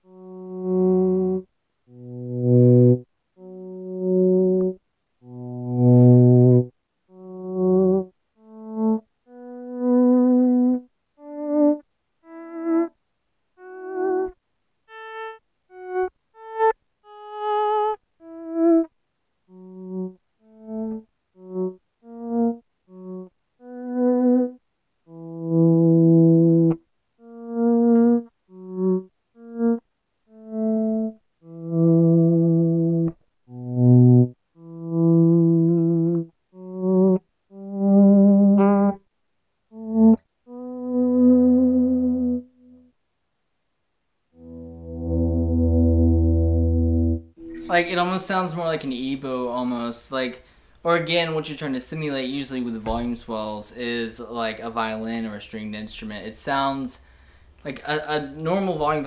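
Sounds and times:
electric guitar sustained notes: 44.4s - 48.2s.

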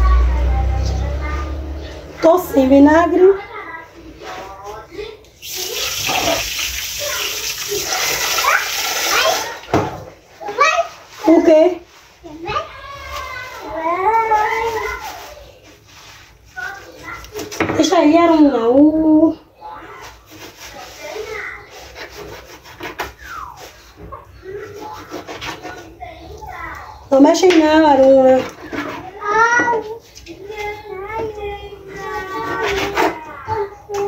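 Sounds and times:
faint rubbing and scraping: 0.0s - 9.6s, 10.2s - 18.5s, 19.6s - 34.0s.

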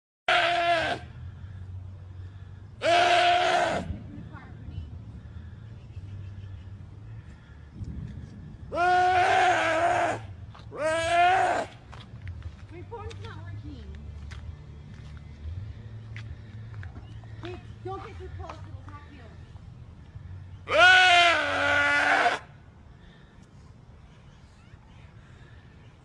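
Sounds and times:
deer bleating in distress: 0.3s - 1.1s, 2.8s - 4.0s, 8.7s - 11.7s, 20.7s - 22.4s.

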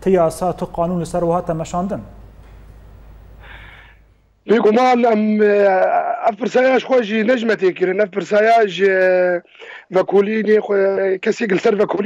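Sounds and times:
faint low room hum: 0.0s - 12.0s
short intake of breath: 3.4s - 4.1s.

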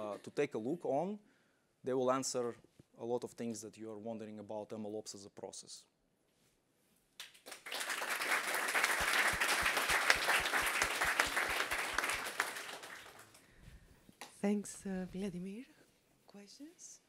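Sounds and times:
audience applause: 7.5s - 13.4s.

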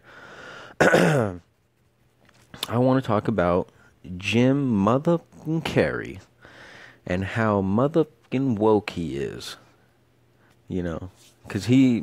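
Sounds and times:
man clearing his throat: 0.8s - 1.5s.

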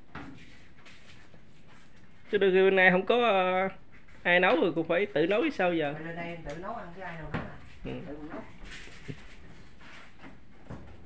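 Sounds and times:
person speaking: 2.3s - 8.6s.

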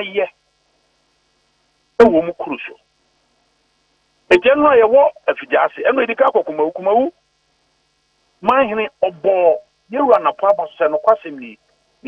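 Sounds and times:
speech over a telephone line: 0.0s - 0.4s, 2.0s - 2.8s, 4.3s - 7.2s, 8.4s - 11.6s
faint hum: 0.0s - 12.0s.

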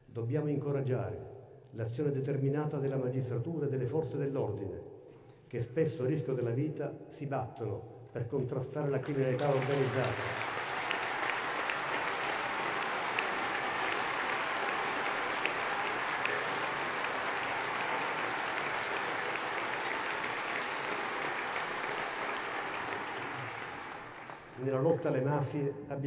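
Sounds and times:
crowd applauding: 8.8s - 24.8s.

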